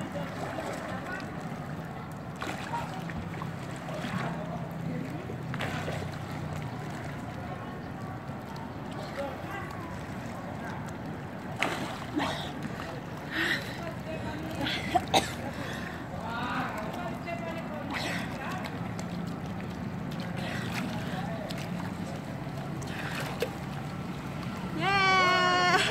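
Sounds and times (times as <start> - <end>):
faint distant voices: 0.0 - 25.9
pool water sloshing and splashing: 0.0 - 25.9.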